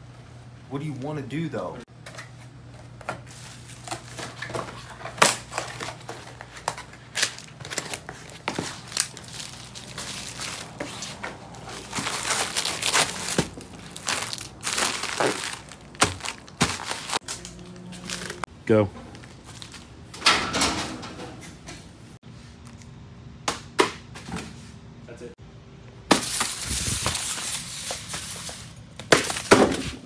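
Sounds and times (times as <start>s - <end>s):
plastic mailer crinkling: 3.3s - 18.4s.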